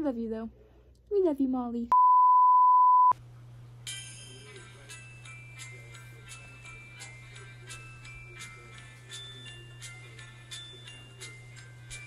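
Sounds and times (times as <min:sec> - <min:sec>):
high test tone beep: 0:01.9 - 0:03.2
music with jingling bells: 0:03.8 - 0:12.0.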